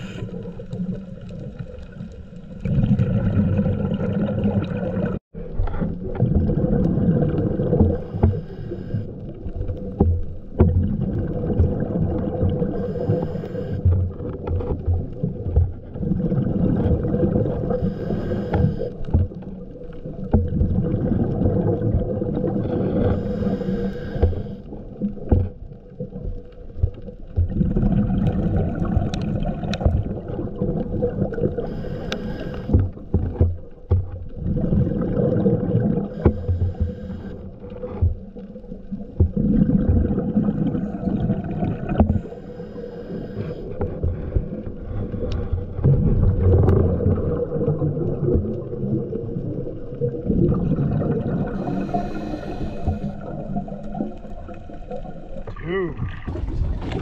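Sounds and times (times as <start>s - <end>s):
diver inhaling through regulator: 0.0s - 0.5s, 7.8s - 9.2s, 12.7s - 14.1s, 17.6s - 19.3s, 22.5s - 24.8s, 31.5s - 33.1s, 36.0s - 37.6s, 41.9s - 45.9s, 51.4s - 53.5s
gurgling exhaled bubbles: 0.0s - 57.0s
faint steady hum: 11.9s - 14.8s, 30.6s - 33.5s, 34.8s - 56.2s.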